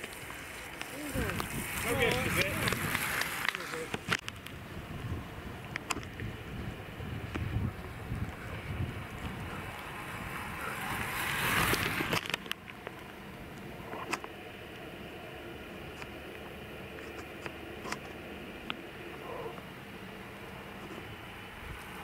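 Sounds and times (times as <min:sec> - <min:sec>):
wind on microphone: 0:01.1 - 0:03.2, 0:04.5 - 0:12.2.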